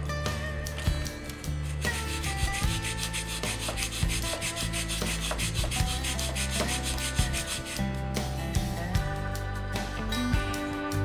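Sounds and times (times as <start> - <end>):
guitar music: 0.0 - 11.0
cuttlebone scraping on stone: 1.6 - 7.8.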